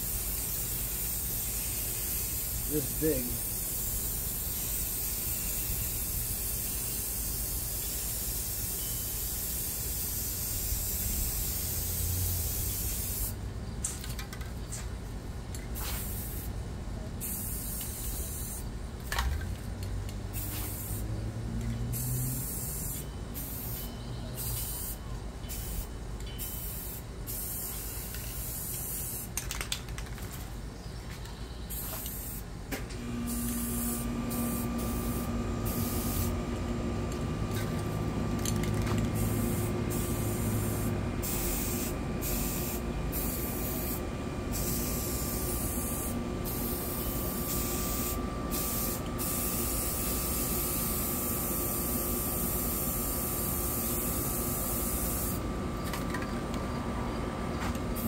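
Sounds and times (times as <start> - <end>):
spray paint cans hissing: 0.0 - 14.9, 15.6 - 16.5, 17.2 - 30.0, 31.7 - 32.5, 33.2 - 36.4, 37.1 - 56.2.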